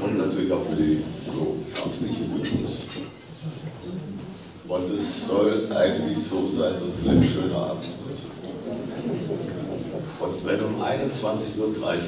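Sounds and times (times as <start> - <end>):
indistinct voices: 6.5 - 8.4.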